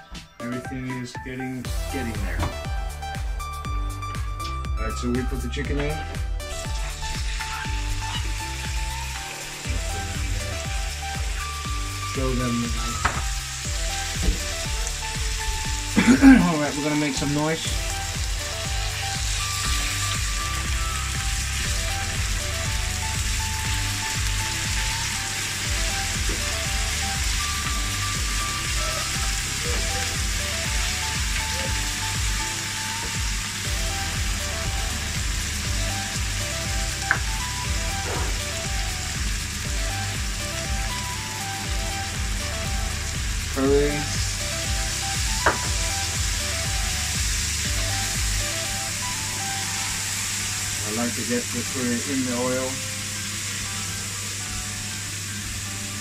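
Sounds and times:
chicken sizzling in a frying pan: 6.6s - 56.0s.

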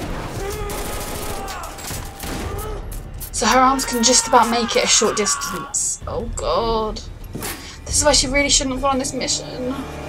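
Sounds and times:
rapid gunfire: 0.0s - 2.7s.

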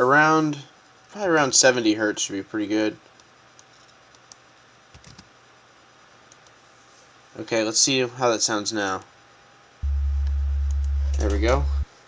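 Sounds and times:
deep sub-bass sine tone hum: 9.8s - 11.9s.

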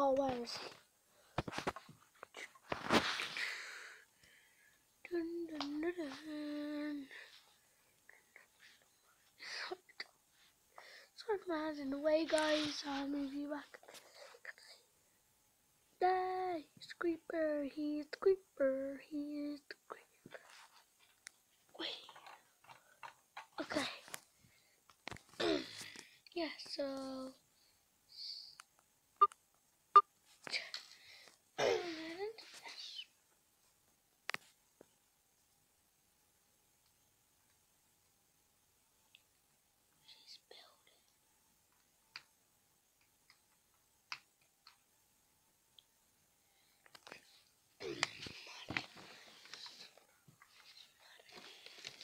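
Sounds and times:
child whispering: 0.0s - 0.8s, 5.0s - 7.5s, 8.1s - 10.1s, 10.8s - 14.9s, 16.0s - 20.6s, 21.7s - 22.4s, 23.5s - 24.2s, 25.4s - 27.4s, 28.1s - 28.6s, 31.6s - 33.2s, 40.0s - 41.1s, 47.0s - 52.0s
wordless voice sound: 0.0s - 0.9s, 5.0s - 7.3s, 11.2s - 14.8s, 26.3s - 27.4s.

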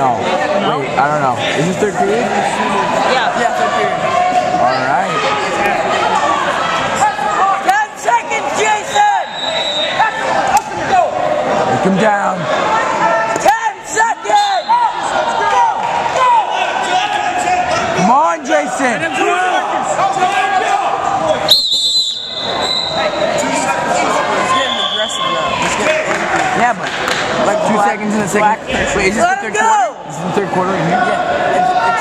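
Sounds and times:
crowd murmuring and calling: 0.0s - 32.0s.

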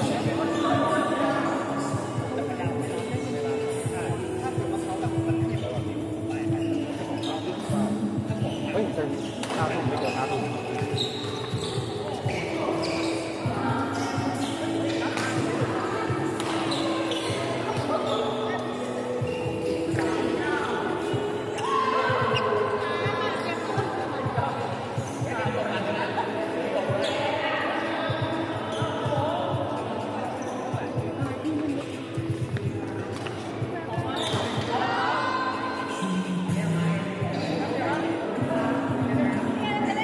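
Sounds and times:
busy sports hall: 0.0s - 40.0s
sneakers squeaking on wooden floor: 2.8s - 23.9s, 26.9s - 39.9s.

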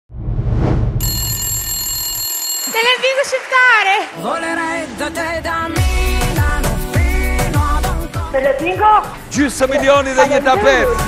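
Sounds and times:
whoosh with low rumble: 0.1s - 1.0s
bell-like ringing tone: 1.0s - 3.2s.

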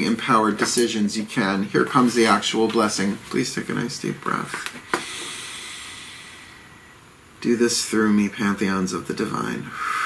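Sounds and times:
person breathing out: 4.9s - 7.0s, 9.7s - 10.0s.

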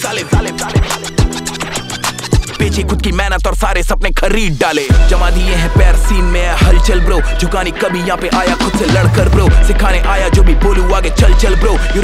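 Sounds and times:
person rapping: 0.0s - 1.8s, 2.4s - 12.0s
turntable scratching: 0.0s - 7.2s, 7.8s - 12.0s
heavy bass: 0.4s - 12.0s.

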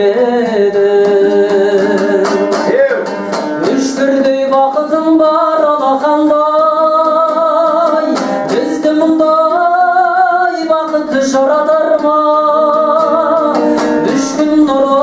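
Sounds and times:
man singing with vibrato: 0.0s - 15.0s
strummed lute: 0.0s - 15.0s.

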